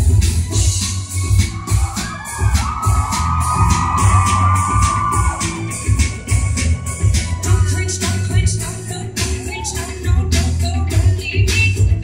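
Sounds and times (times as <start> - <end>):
crowd screaming and cheering: 0.0 - 10.1
live band playing amplified music: 0.0 - 12.0.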